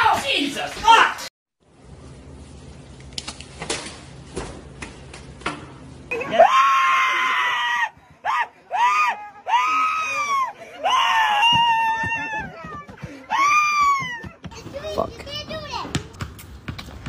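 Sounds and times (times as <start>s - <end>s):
man screaming high-pitched cries: 6.2s - 14.3s.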